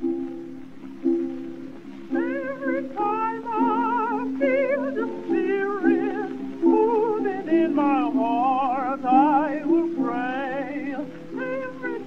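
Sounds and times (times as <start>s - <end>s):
held accompaniment chords: 0.0s - 12.0s
woman singing with vibrato: 2.0s - 12.0s.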